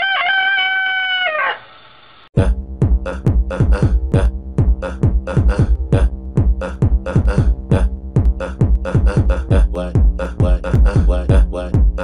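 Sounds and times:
rooster crowing: 0:00.0 - 0:01.8.

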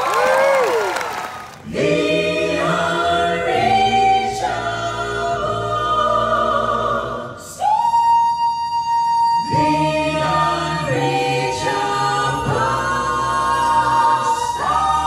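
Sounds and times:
vocal ensemble singing: 0:01.4 - 0:15.0.

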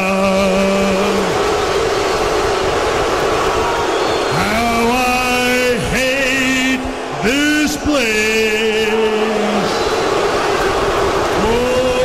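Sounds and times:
man singing long notes: 0:00.0 - 0:01.6, 0:04.3 - 0:09.9
large crowd noise: 0:00.0 - 0:12.0.

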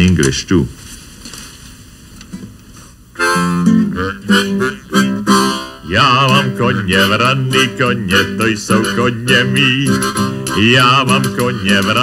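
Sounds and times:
acoustic guitar: 0:02.3 - 0:12.0
man singing folk song: 0:03.9 - 0:12.0.

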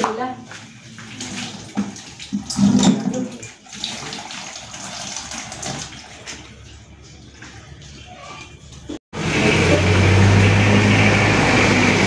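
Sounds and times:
water pouring into plastic bucket: 0:01.0 - 0:06.5.

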